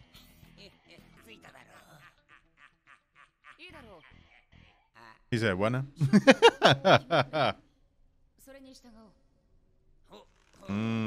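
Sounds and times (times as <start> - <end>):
voice-acted character dialogue: 5.4 - 7.5, 10.7 - 11.0.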